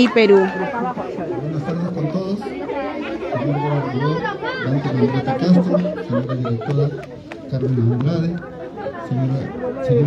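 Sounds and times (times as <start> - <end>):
crowd chatter: 0.0 - 10.0
man talking: 3.3 - 10.0.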